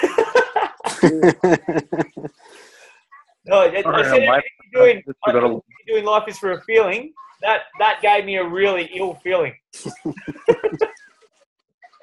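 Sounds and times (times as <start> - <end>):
person laughing: 0.0 - 2.4, 9.8 - 11.0.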